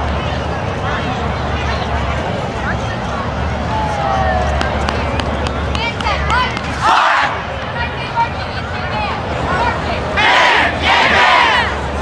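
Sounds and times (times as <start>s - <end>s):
stadium crowd talking: 0.0s - 12.0s.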